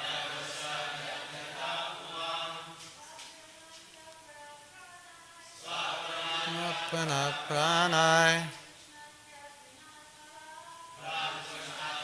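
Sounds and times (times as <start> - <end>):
verse chanted to slow melody: 0.0 - 2.8, 5.6 - 8.6, 10.7 - 12.0.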